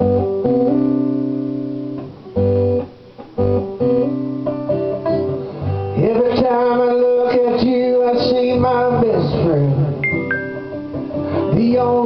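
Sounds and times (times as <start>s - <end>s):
acoustic guitar strummed chords: 0.0s - 12.0s.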